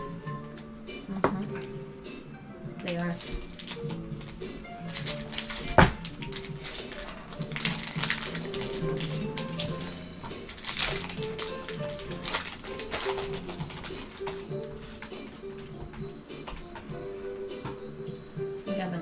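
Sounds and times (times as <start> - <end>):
background music: 0.0 - 19.0
cards being handled: 0.4 - 0.8, 2.8 - 16.9
foil wrappers crinkling and tearing: 2.8 - 15.7.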